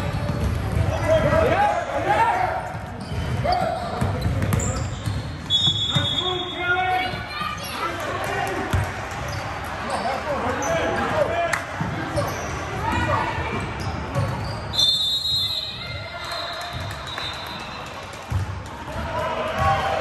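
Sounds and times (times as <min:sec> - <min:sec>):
shouting voices echoing: 0:00.9 - 0:02.7.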